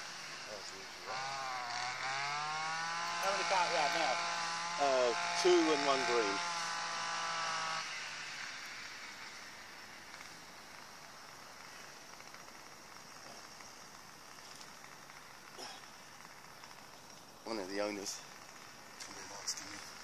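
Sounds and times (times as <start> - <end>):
faint outdoor background hiss: 0.0 - 20.0.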